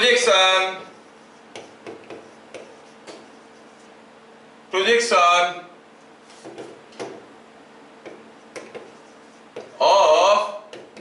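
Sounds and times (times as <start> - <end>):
chalk tapping and scraping on blackboard: 0.8 - 4.0, 6.3 - 7.2, 8.0 - 9.8, 10.7 - 11.0.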